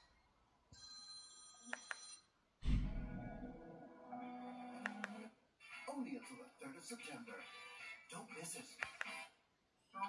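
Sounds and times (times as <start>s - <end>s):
electronic phone ringtone: 0.8s - 2.3s.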